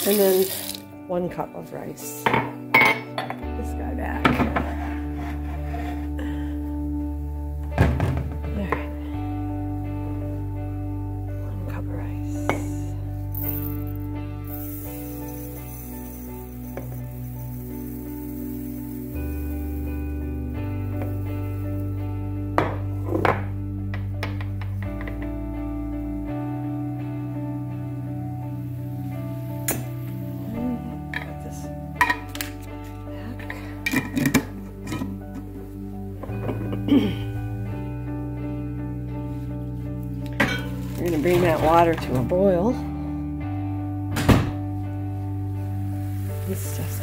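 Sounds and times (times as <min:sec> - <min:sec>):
background music with bass line: 0:02.5 - 0:47.0.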